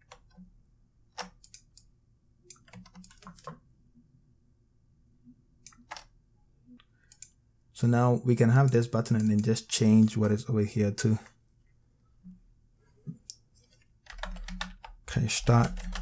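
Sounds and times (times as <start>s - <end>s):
faint room hum: 0.0s - 16.0s.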